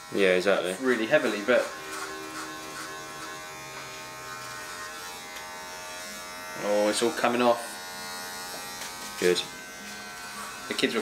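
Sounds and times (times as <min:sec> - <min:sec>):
electric hair clippers buzzing: 0:00.0 - 0:11.0.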